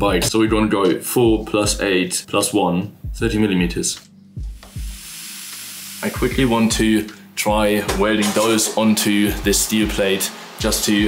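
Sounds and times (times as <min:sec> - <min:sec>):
background music with kick drum: 0:00.0 - 0:11.0.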